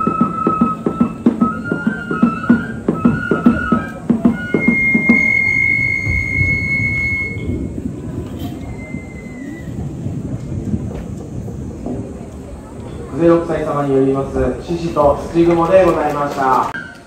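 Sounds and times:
drum beats: 0.0 - 7.6
transverse flute long high note: 0.0 - 9.9
low background murmur: 0.0 - 17.0.

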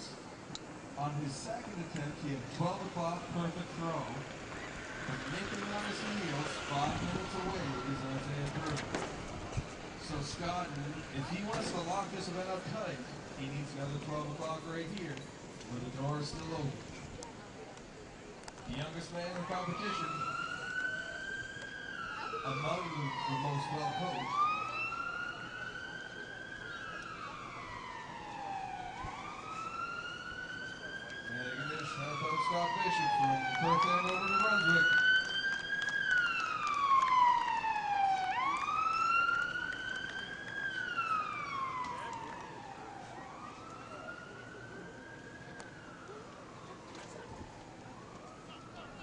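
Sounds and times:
siren wailing: 1.8 - 15.1, 18.7 - 49.0.

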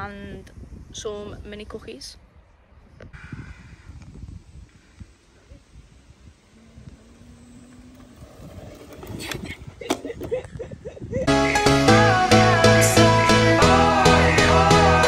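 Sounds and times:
wind buffeting microphone: 0.0 - 11.3.

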